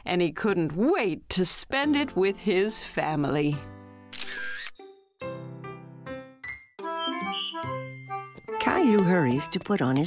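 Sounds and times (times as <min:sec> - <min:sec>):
camera snapshot sound effect: 0:04.1 - 0:04.8
background music with held notes: 0:04.8 - 0:10.0.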